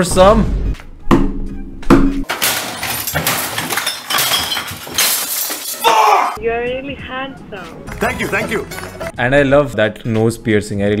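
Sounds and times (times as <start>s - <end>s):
crashes of breaking things: 2.2s - 6.2s
shards clinking: 2.3s - 6.1s, 8.2s - 9.1s
glass smashing: 2.3s - 6.4s, 8.1s - 9.1s.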